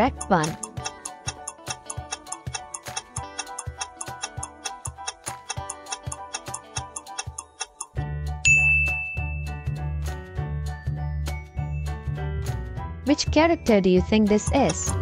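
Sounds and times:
clock ticking: 0:00.0 - 0:08.0, 0:14.3 - 0:15.0
light countdown tune: 0:00.0 - 0:09.9, 0:13.1 - 0:15.0
bright chime: 0:08.5 - 0:09.6.

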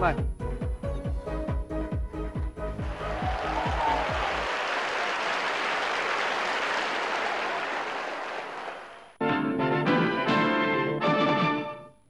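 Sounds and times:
music with a steady beat: 0:00.0 - 0:04.4
studio audience applauding: 0:02.8 - 0:09.2.

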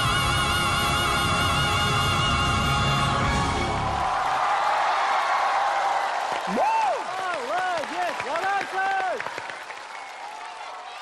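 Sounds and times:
high-pitched cheers and screams: 0:03.4 - 0:09.2
audience applauding: 0:03.7 - 0:11.0.

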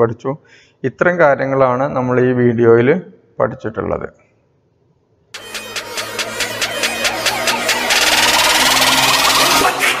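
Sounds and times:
pulsing electronic music: 0:05.4 - 0:10.0.

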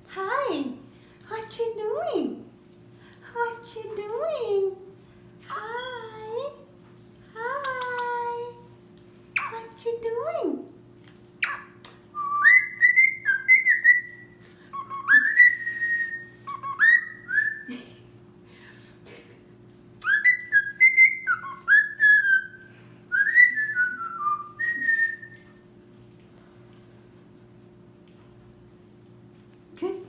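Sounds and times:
steady low hum: 0:00.0 - 0:30.0
bird whistling: 0:11.4 - 0:17.7, 0:20.0 - 0:25.5.

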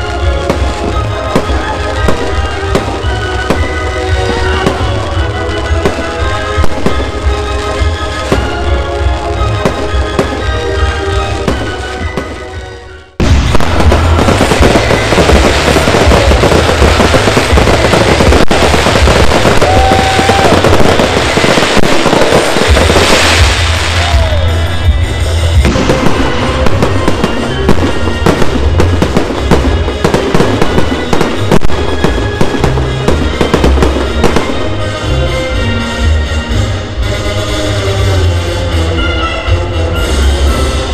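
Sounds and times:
fireworks bangs and crackling: 0:00.0 - 0:40.9
music with heavy pulsing bass: 0:13.2 - 0:31.1.

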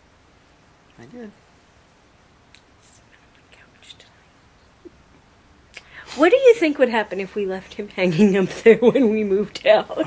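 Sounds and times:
person whispering: 0:02.8 - 0:04.3.

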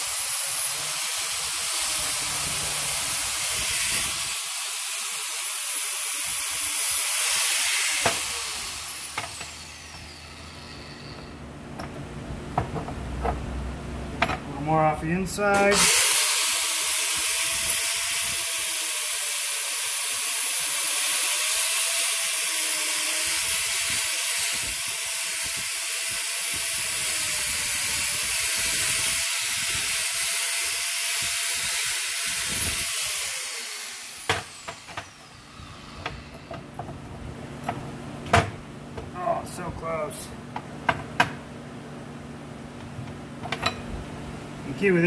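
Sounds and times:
angle grinder grinding steel: 0:00.0 - 0:11.5, 0:15.4 - 0:36.9.

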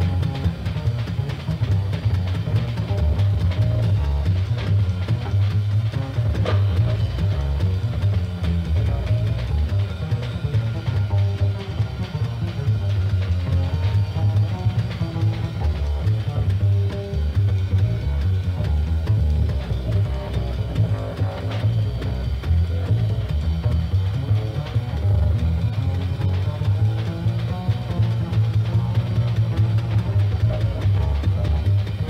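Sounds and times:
drum kit: 0:00.0 - 0:32.0
plucked double bass: 0:00.0 - 0:32.0.

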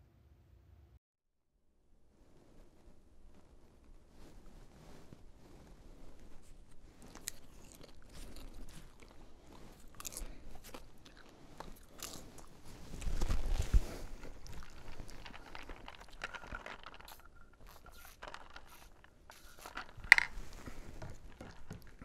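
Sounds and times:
rustling: 0:02.0 - 0:22.0
person chewing crunchy snack: 0:07.0 - 0:22.0.

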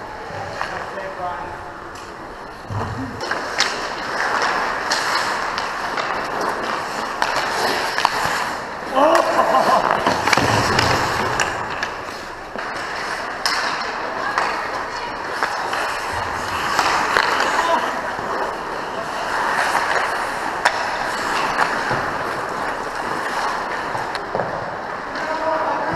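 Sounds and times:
skates scraping on ice: 0:00.2 - 0:25.9
hockey sticks and puck knocking: 0:02.8 - 0:25.9.

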